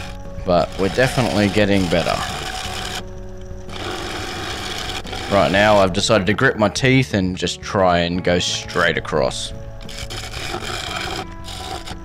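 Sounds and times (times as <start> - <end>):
low steady lathe hum: 0.0 - 6.2, 9.4 - 12.0
gouge cutting wood rhythmically: 0.0 - 7.0, 8.3 - 12.0.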